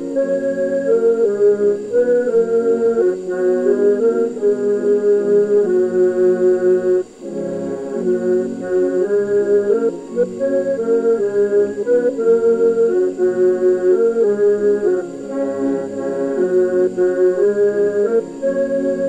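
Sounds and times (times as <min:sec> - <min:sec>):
piano accordion: 0:00.0 - 0:19.0
pipe organ: 0:00.0 - 0:19.0.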